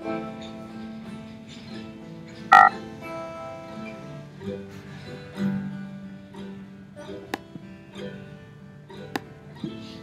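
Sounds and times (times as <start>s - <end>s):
soft acoustic guitar music: 0.0s - 10.0s.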